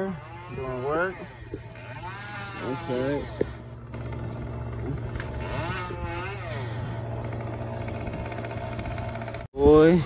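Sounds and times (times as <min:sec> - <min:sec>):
engine droning: 0:00.0 - 0:10.0.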